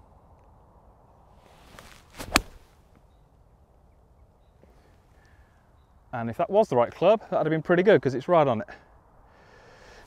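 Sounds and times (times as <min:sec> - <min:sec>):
golf club swishing through air: 0:01.4 - 0:02.9
golf club striking ball: 0:02.2 - 0:02.6.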